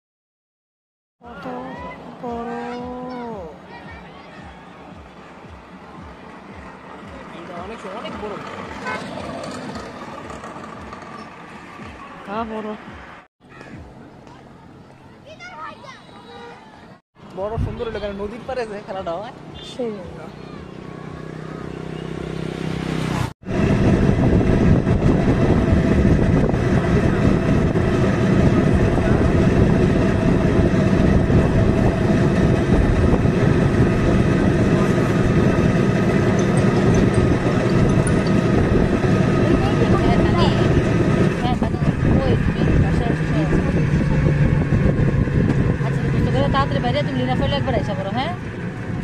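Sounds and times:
road and wind noise: 0:01.2 - 0:49.0
vehicle engine hum: 0:01.2 - 0:49.0.

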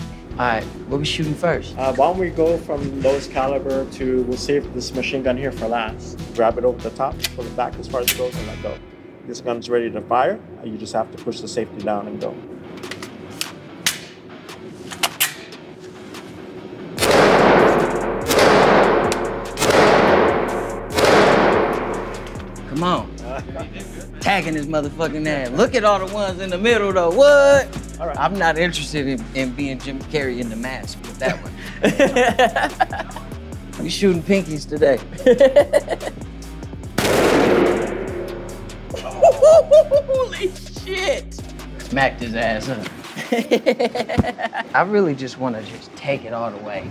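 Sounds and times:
pistol shots with echo: 0:17.0 - 0:22.2, 0:37.0 - 0:38.6
revolver gunshot with reverb: 0:17.0 - 0:22.2, 0:37.0 - 0:38.6
person laughing: 0:23.2 - 0:24.3, 0:31.2 - 0:33.4, 0:35.0 - 0:36.3, 0:38.9 - 0:40.7, 0:43.2 - 0:44.7.

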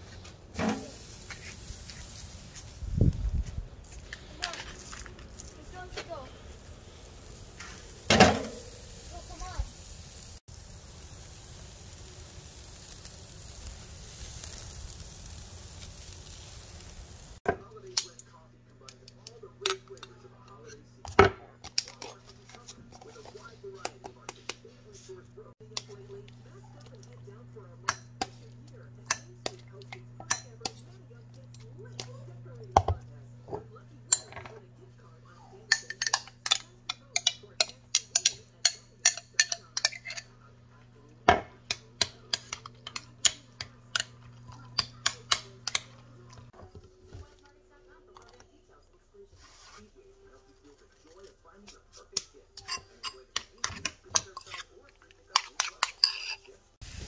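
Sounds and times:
burger patty sizzling on grill: 0:00.0 - 0:18.1, 0:21.7 - 0:46.6, 0:51.6 - 0:57.0.

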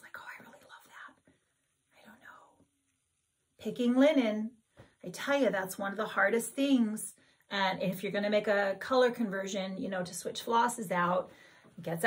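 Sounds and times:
woman speaking softly: 0:00.0 - 0:01.1.

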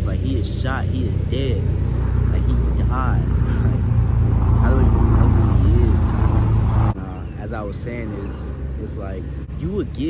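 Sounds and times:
loud low rumble: 0:00.0 - 0:08.5.

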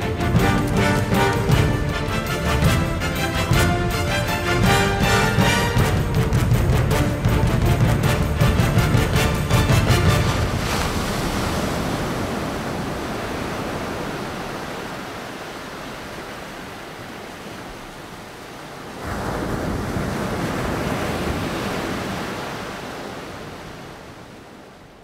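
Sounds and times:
ocean waves breaking: 0:00.0 - 0:25.0.

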